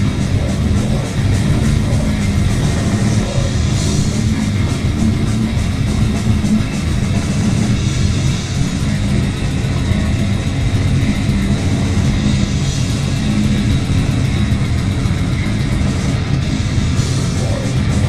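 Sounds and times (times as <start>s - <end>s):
distorted guitars and bass: 0.0s - 18.0s
fast dense drumming: 0.0s - 18.0s
rapid cymbal hits: 0.0s - 18.0s.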